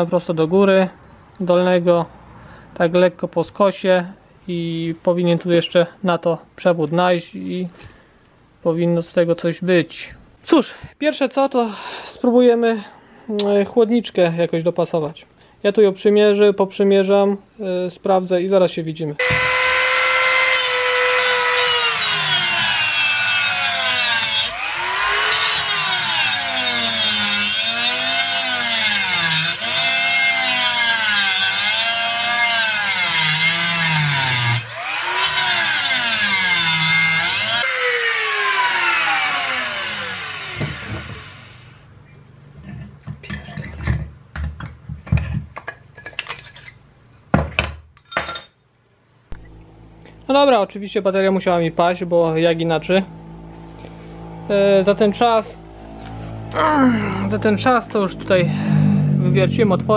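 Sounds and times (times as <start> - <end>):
rotary tool whine cutting metal: 19.2 - 41.8.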